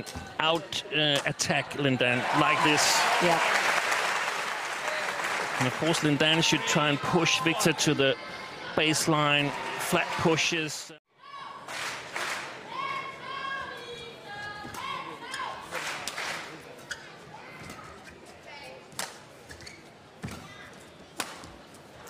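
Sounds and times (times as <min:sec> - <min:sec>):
shoes squeaking on court floor: 0:16.7 - 0:21.6.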